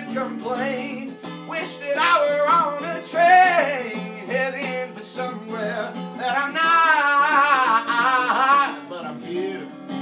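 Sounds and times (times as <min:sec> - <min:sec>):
man singing soul vocal: 0:00.0 - 0:09.9
strummed acoustic guitar: 0:00.0 - 0:10.0.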